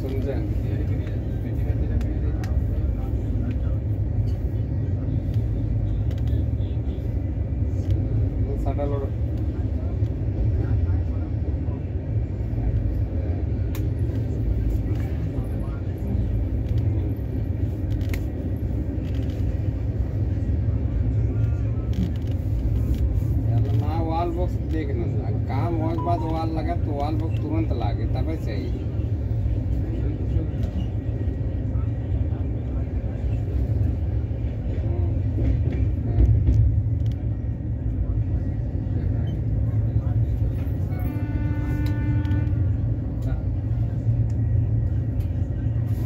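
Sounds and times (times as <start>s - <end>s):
train rumbling inside coach: 0.0s - 46.0s.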